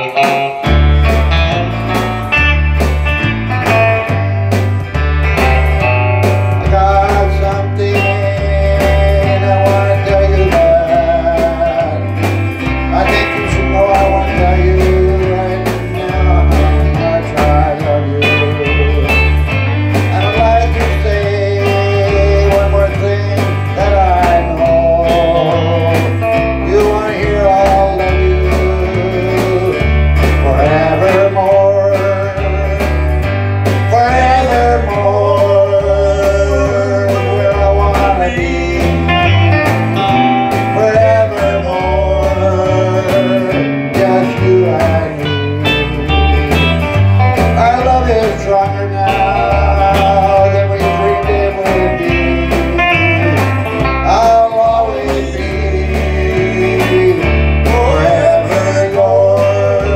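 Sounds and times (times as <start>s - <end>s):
electric bass line: 0.0s - 59.9s
electric lead guitar: 0.0s - 59.9s
strummed acoustic guitar: 0.0s - 59.9s.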